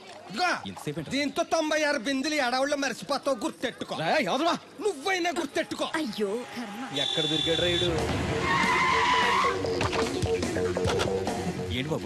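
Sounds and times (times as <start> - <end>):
background music with held notes: 7.7 - 12.0.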